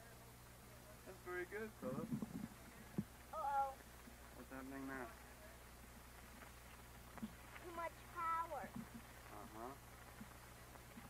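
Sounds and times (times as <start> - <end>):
child making wordless calls: 3.4 - 3.8, 7.7 - 8.7.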